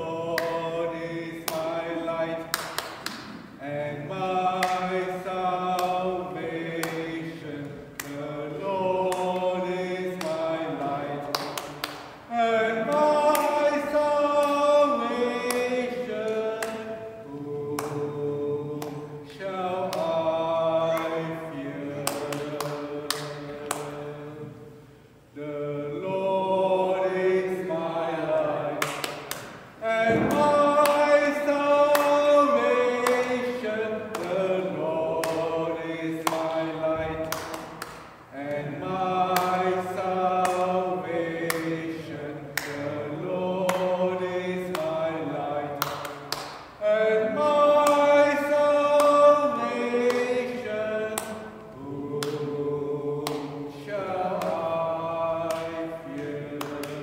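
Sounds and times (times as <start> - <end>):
man singing: 12.3 - 17.0, 29.8 - 37.3.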